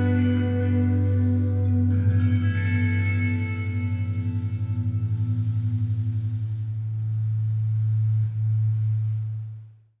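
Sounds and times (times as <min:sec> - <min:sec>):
low sustained musical note: 0:00.0 - 0:09.9.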